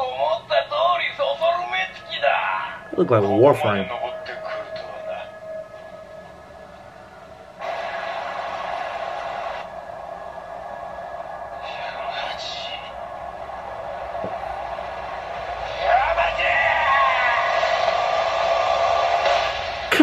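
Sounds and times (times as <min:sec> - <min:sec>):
character voice speaking: 0:03.0 - 0:03.9.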